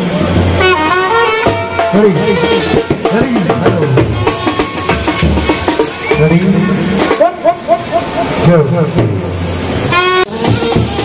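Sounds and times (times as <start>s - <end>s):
street band music over loudspeakers: 0.0s - 11.0s
held trumpet note: 0.6s - 3.2s, 9.8s - 11.0s
man's amplified voice calling: 1.4s - 4.6s, 6.0s - 10.4s.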